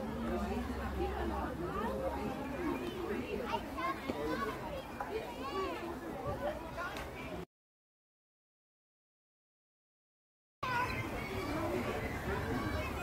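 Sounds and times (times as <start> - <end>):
children calling and chattering: 0.0 - 7.5, 10.6 - 13.0.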